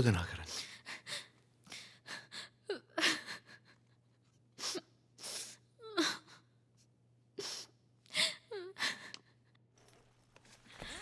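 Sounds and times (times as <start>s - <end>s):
woman sobbing: 0.6s - 6.5s, 7.4s - 9.5s.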